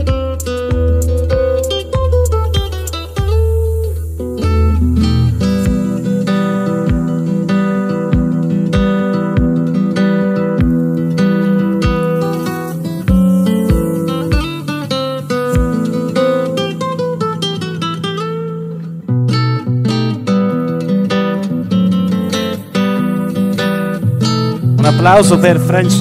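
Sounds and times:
plucked and strummed guitar: 0.0s - 26.0s
bass thumps: 0.1s - 7.3s, 13.1s - 14.6s
heavy bass line: 0.1s - 9.7s, 11.7s - 14.7s.

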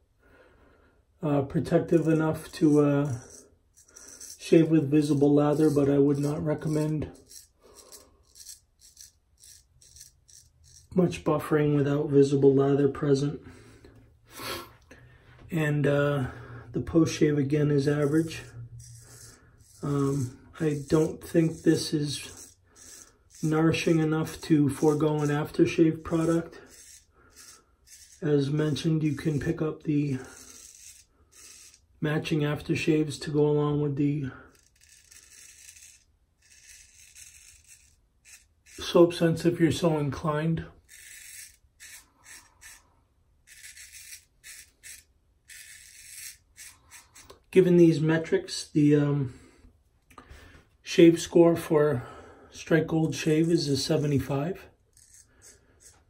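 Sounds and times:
razor scraping stubble: 1.4s - 11.3s, 16.8s - 48.3s, 52.6s - 56.0s.

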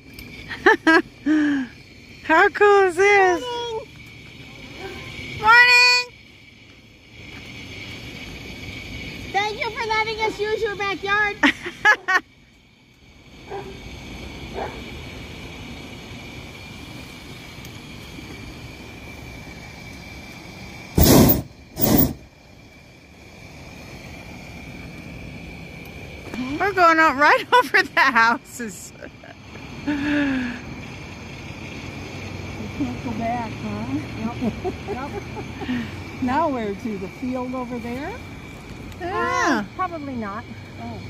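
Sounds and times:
propane burner blasts: 0.0s - 41.0s
people talking: 2.2s - 3.9s, 5.4s - 6.1s, 9.3s - 11.7s, 26.4s - 29.1s, 32.6s - 38.2s, 39.0s - 41.0s.

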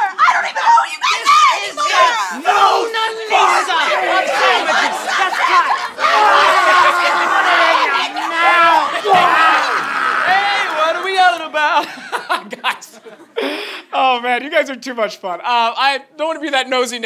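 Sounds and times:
men and women yelling and screaming: 0.0s - 11.8s.

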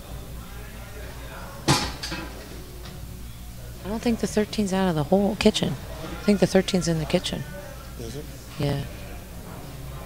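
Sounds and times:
low hum and murmur: 0.0s - 10.0s.

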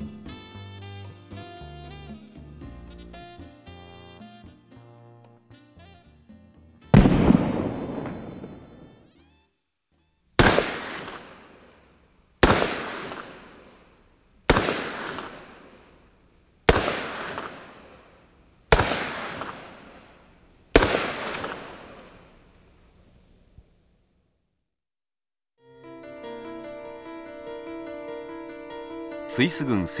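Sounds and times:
revolver gunshots with echo: 7.0s - 9.1s, 10.4s - 11.8s, 12.4s - 13.9s, 14.5s - 16.0s, 16.7s - 18.1s, 18.7s - 20.2s, 20.8s - 22.3s.

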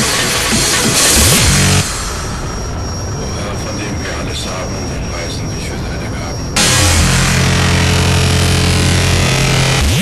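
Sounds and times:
speedcore electronic music: 0.0s - 10.0s.

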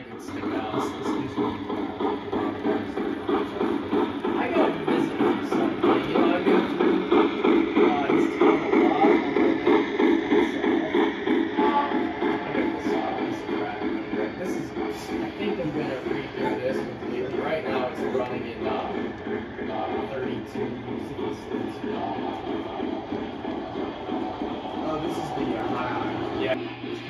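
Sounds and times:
model steam locomotive chuffing: 0.0s - 27.0s
train rolling past: 0.0s - 27.0s.

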